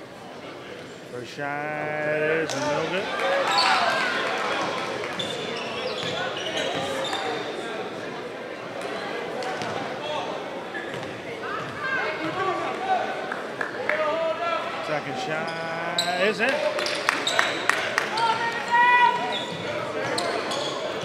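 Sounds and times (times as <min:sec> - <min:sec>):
voices in a hall: 0:00.0 - 0:21.0.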